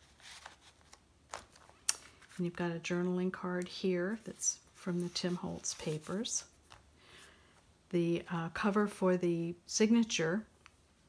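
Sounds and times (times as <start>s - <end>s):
paper rustling and sliding: 0.0s - 2.4s, 4.2s - 6.8s.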